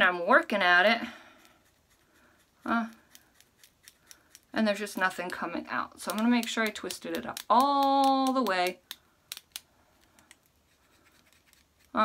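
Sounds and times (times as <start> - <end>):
cosmetic pencil twisting: 1.4 - 12.0.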